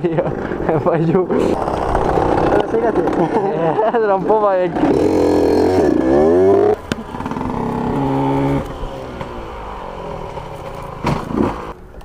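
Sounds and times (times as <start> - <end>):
motorcycle engine revving: 1.6 - 11.8.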